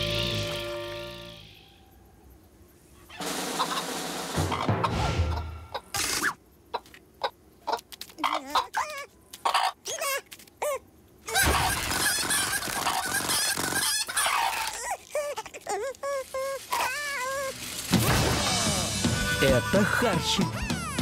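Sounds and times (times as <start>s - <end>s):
cartoon hens clucking: 4.5s - 17.5s.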